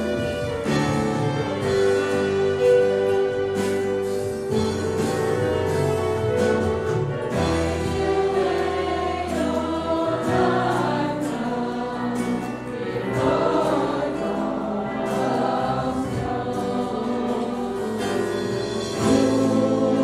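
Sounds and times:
congregation singing a hymn: 0.0s - 20.0s
violins: 0.0s - 20.0s.

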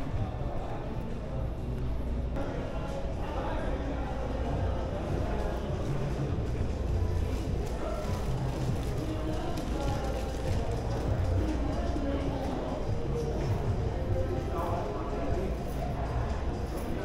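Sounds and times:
background music: 0.0s - 17.0s
indistinct chatter of shoppers: 0.0s - 17.0s.

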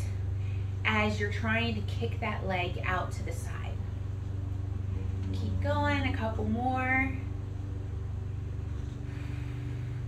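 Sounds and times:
ceiling fan motor hum: 0.0s - 10.0s.

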